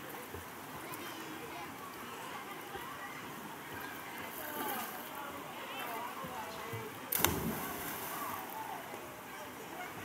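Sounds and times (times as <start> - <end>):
person splashing into river: 7.1 - 8.4.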